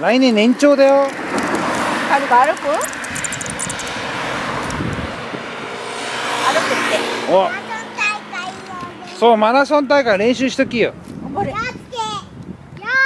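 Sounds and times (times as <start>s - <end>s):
cars passing: 0.0s - 12.8s.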